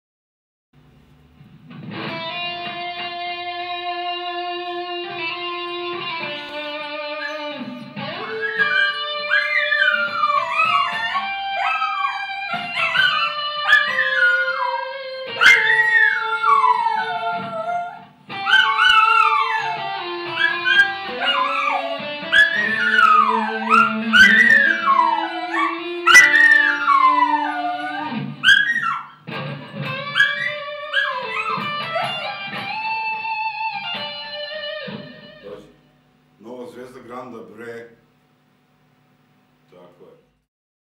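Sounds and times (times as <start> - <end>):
electric guitar sustained notes: 1.7 - 36.0
dog howling and whining: 6.4 - 33.2.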